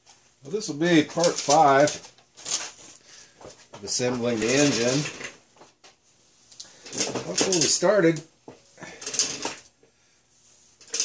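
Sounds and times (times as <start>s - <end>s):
man speaking: 0.4s - 2.0s, 3.8s - 5.1s, 7.2s - 8.3s.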